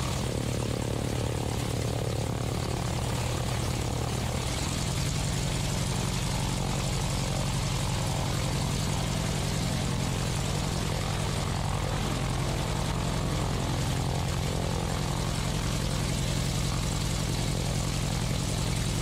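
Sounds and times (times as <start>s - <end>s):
propeller plane engine throbbing: 0.0s - 19.0s.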